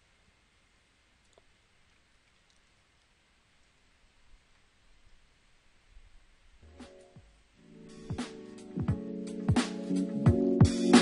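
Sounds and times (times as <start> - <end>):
computer mouse clicks: 1.2 - 3.1.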